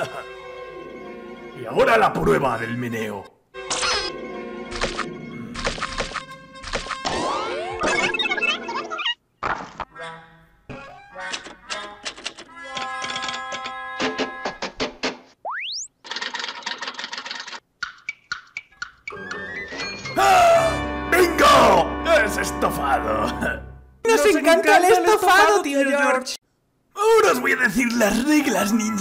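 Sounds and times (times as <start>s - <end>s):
choppy cartoon music: 3.6s - 9.2s, 9.8s - 14.7s, 17.8s - 24.3s.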